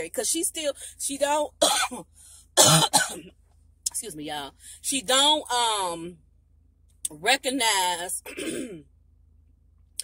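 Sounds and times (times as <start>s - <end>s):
woman coughing: 1.6s - 2.0s, 2.6s - 3.3s, 8.2s - 8.9s.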